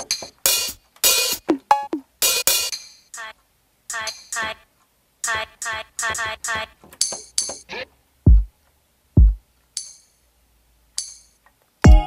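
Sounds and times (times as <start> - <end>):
clinking metallic hits: 0.0 - 1.4, 9.8 - 10.2, 11.0 - 11.4.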